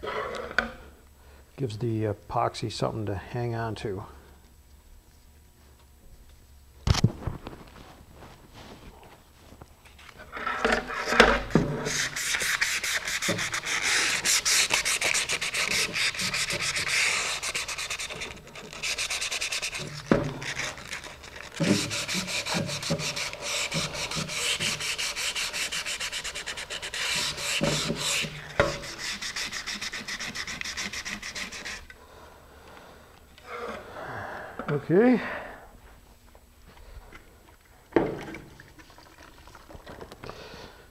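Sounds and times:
sandpaper rubbing on fiberglass: 0:11.8 - 0:31.9.

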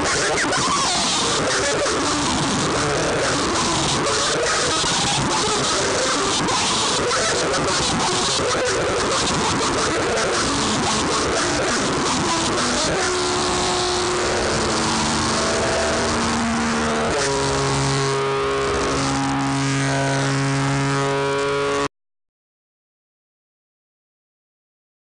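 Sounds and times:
droning guitar chord: 0:00.0 - 0:21.9
harsh electric guitar noise: 0:00.0 - 0:21.9.

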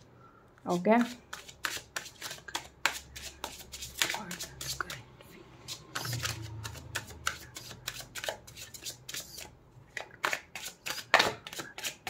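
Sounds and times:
cards being shuffled: 0:01.0 - 0:05.0, 0:05.7 - 0:12.0.

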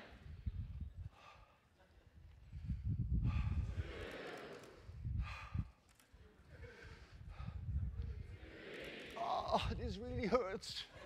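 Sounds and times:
noisy breathing: 0:01.0 - 0:01.8, 0:02.4 - 0:06.0, 0:06.6 - 0:09.2.

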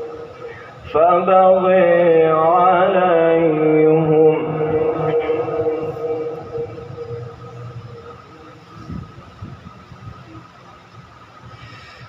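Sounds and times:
recitation over loudspeaker: 0:00.0 - 0:09.5
low hum and rumble: 0:00.0 - 0:12.0.

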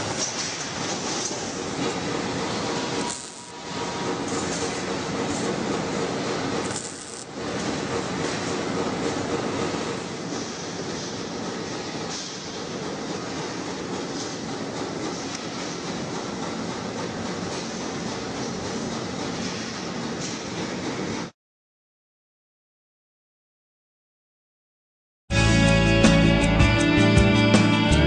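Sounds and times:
machinery noise: 0:00.0 - 0:21.3.

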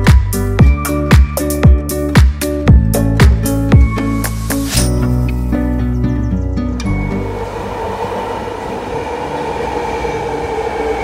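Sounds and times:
background music: 0:00.0 - 0:11.0
two-toned whine: 0:06.8 - 0:11.0
subway train rushing: 0:06.9 - 0:11.0.

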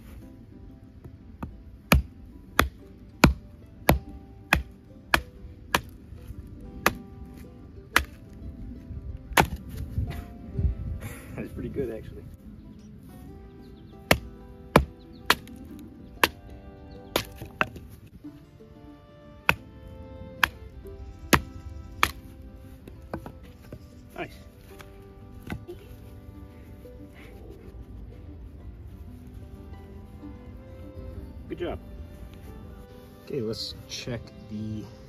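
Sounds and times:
wood splitting: 0:01.4 - 0:06.0, 0:06.8 - 0:08.3, 0:09.3 - 0:09.9, 0:14.0 - 0:16.4, 0:17.1 - 0:18.2, 0:19.4 - 0:19.6, 0:20.4 - 0:20.7, 0:21.3 - 0:23.8, 0:24.7 - 0:25.8.

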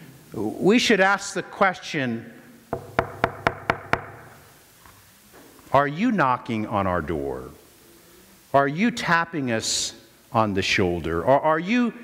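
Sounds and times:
quick knocking: 0:02.7 - 0:04.3.

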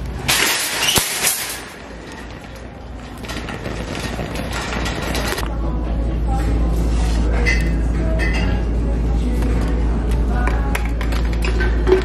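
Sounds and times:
shopping cart rattling: 0:00.0 - 0:05.4
steady low hum: 0:00.0 - 0:12.0.

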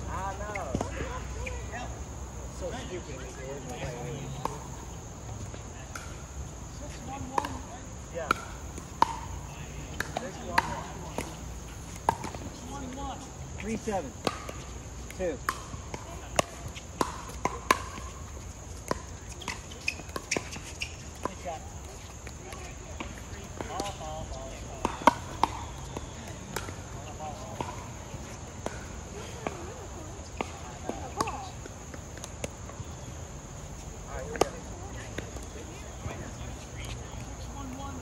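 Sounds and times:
ball bouncing on court: 0:03.6 - 0:04.8, 0:06.9 - 0:33.0, 0:34.1 - 0:38.0.

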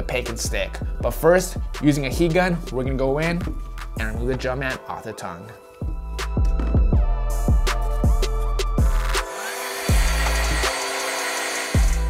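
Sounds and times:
hip-hop beat: 0:00.0 - 0:04.8, 0:05.8 - 0:11.2
heat gun blowing: 0:08.8 - 0:12.0.

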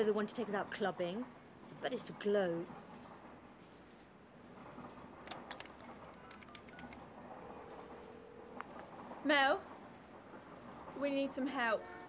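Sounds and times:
telephone keypad clicks and beeps: 0:06.3 - 0:07.0
steady telephone line tone: 0:06.4 - 0:09.4.

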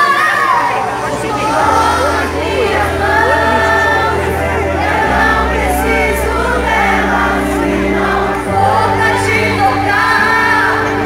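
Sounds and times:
choir singing: 0:00.0 - 0:11.0
sustained bass notes: 0:00.0 - 0:11.0.

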